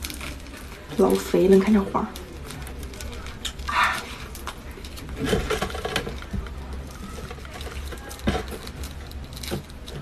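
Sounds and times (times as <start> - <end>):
starfish skin crackling: 0.0 - 10.0.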